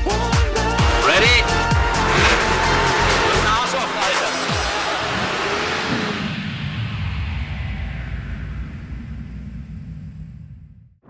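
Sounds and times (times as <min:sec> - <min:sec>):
car engine rumbling: 0:00.6 - 0:06.7.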